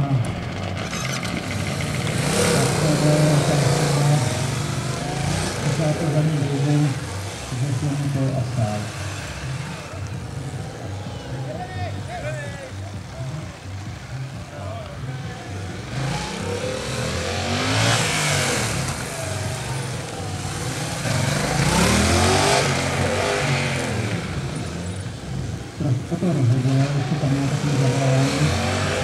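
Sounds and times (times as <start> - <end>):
motorcycle engine revving: 0.0 - 29.0.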